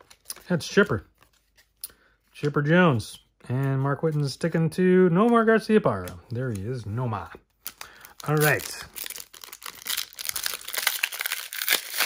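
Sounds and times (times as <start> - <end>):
foil wrapper crinkling: 7.6 - 12.0
foil tearing: 8.2 - 12.0.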